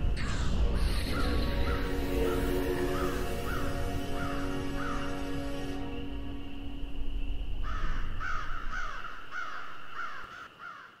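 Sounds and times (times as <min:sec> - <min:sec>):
crow cawing: 0:02.8 - 0:05.2, 0:07.6 - 0:11.0.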